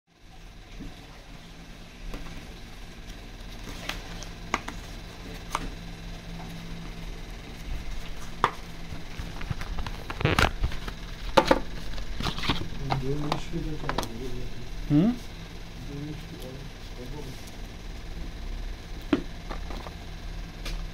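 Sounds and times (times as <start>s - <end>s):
low steady hum: 0.1s - 20.9s.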